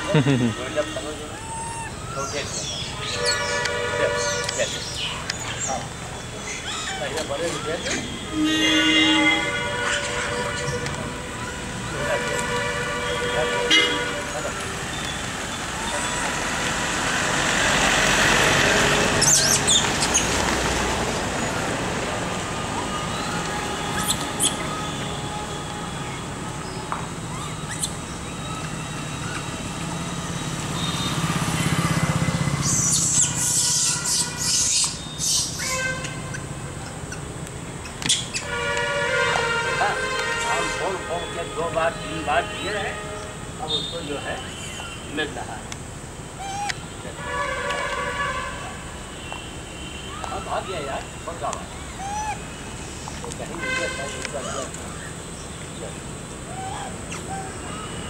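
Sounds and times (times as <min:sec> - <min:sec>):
road traffic passing: 0:00.0 - 0:58.0
vehicle horns honking: 0:00.1 - 0:01.4, 0:03.0 - 0:04.8, 0:07.1 - 0:15.0, 0:30.6 - 0:32.5, 0:33.4 - 0:36.8, 0:38.3 - 0:45.5, 0:46.9 - 0:51.6, 0:53.4 - 0:54.7.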